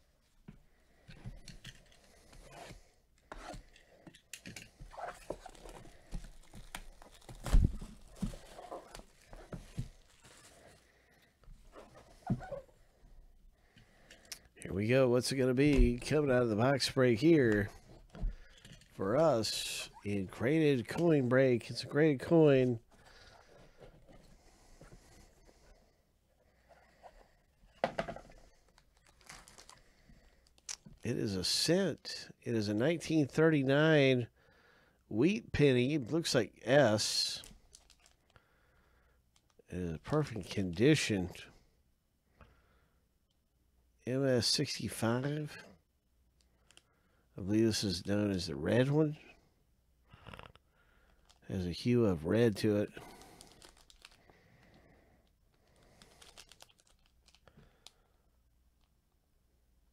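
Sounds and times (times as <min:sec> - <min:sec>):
plastic shrink wrap crinkling: 0:04.7 - 0:10.8, 0:28.5 - 0:31.0, 0:37.4 - 0:38.4, 0:53.0 - 0:54.5, 0:55.2 - 0:58.1.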